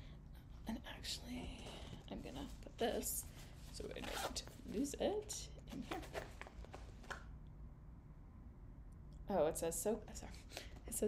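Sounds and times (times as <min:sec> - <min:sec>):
faint steady low hum: 0:00.0 - 0:11.0
soft rustling of packaging: 0:01.2 - 0:07.2.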